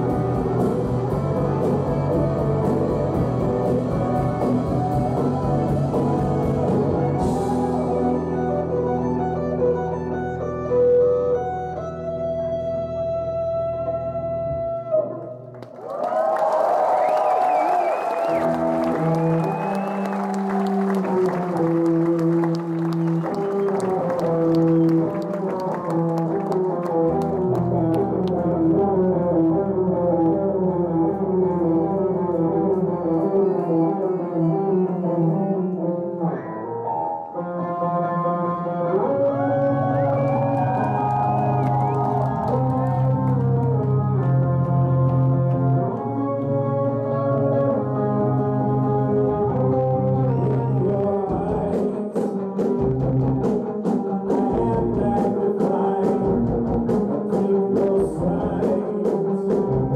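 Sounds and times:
audience applauding and cheering: 0.0 - 8.7, 15.5 - 28.5, 39.0 - 46.5
live band music: 0.0 - 15.5, 18.1 - 59.9.

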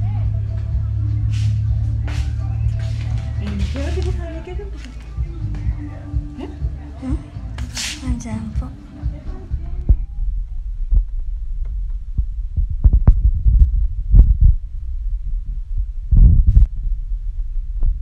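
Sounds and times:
wind buffeting: 9.4 - 18.0
microphone handling thumps: 9.5 - 14.8, 15.7 - 17.0.

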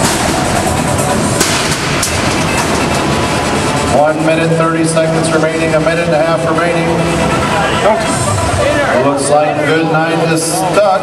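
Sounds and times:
sharp hits: 0.0 - 9.0
machinery rattling and clattering: 0.0 - 11.0.

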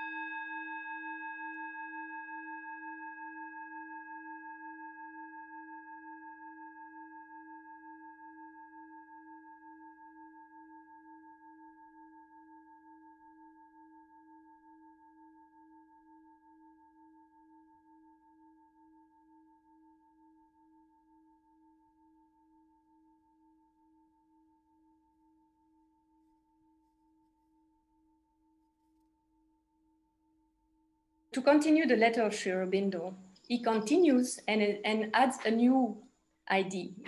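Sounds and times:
singing bowl ringing: 0.0 - 15.0.

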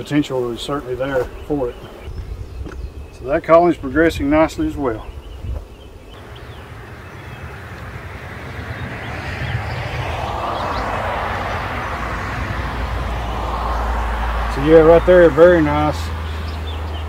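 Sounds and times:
honeybees buzzing: 4.7 - 17.0
low rumble: 6.2 - 15.2.

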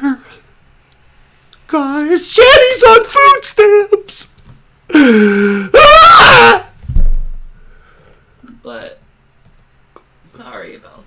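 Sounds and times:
person crying and wailing: 0.0 - 0.5, 4.9 - 6.7.

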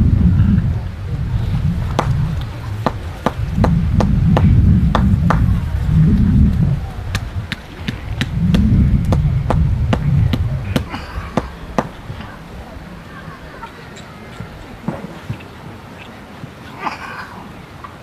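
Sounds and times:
low rumble: 0.0 - 14.8.

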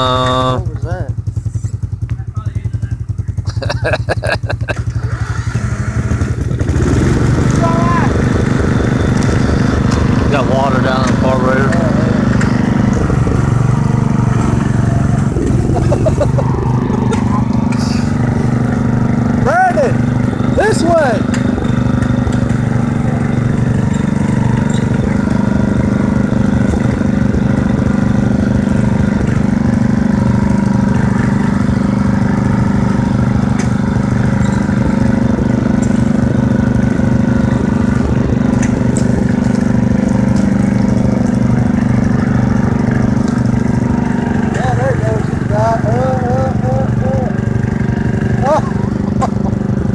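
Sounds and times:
riding lawn mower engine: 0.0 - 49.9.

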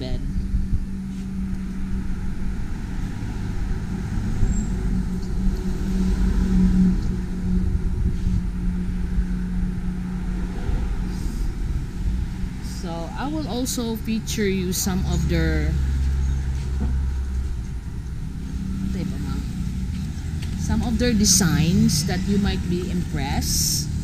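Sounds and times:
highway traffic rumble: 0.0 - 24.0
vehicle passing by: 0.0 - 24.0.

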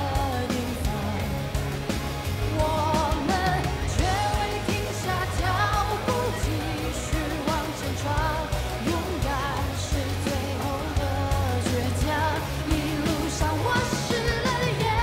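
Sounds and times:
pop song with singing: 0.0 - 15.0
steady bass line: 0.0 - 15.0.

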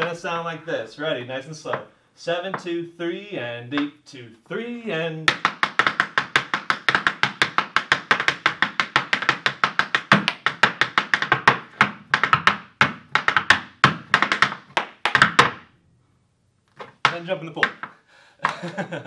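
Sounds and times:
hard shoes tapping on wooden floor: 1.7 - 1.9, 5.3 - 15.6, 16.8 - 18.0.

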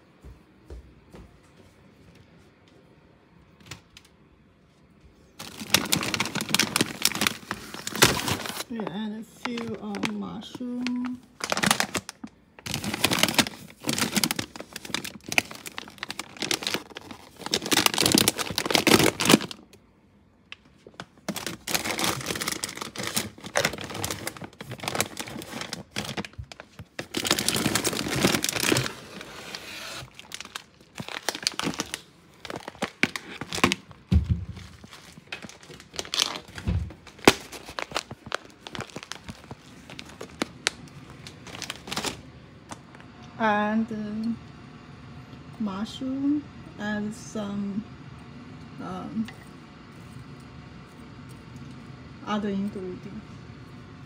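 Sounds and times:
plastic packets crinkling: 5.4 - 19.8, 20.5 - 43.0.

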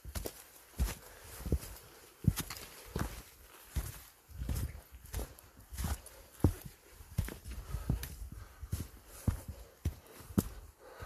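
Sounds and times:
footsteps on stones and leaves: 0.0 - 11.0.

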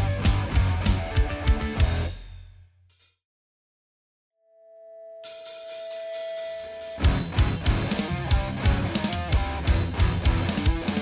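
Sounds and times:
rock band playing: 0.0 - 2.1, 5.2 - 11.0.

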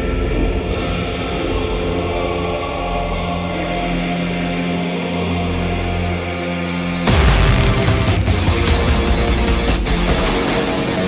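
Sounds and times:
low droning bass: 0.0 - 11.0
sustained synthesizer chords: 0.0 - 11.0.

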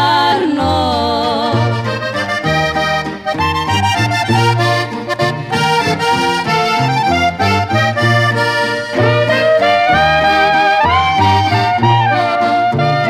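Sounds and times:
accordion playing: 0.0 - 13.0
stepping bass line: 1.5 - 13.0.

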